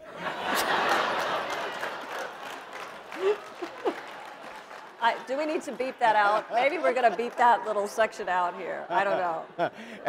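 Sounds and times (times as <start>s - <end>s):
audience laughing: 0.0s - 8.1s, 8.7s - 10.0s
audience applauding: 0.3s - 8.3s.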